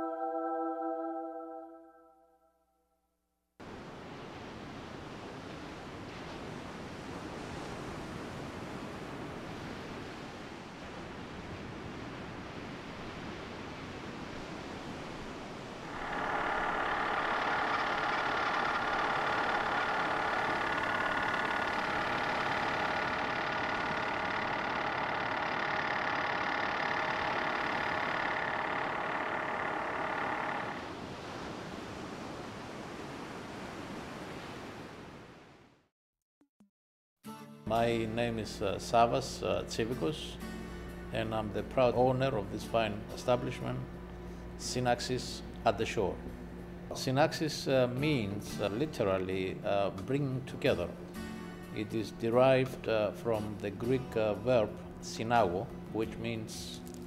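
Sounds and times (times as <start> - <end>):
ocean surf washing onto beach: 3.6 - 35.3
steady hum of held pitches: 15.8 - 30.8.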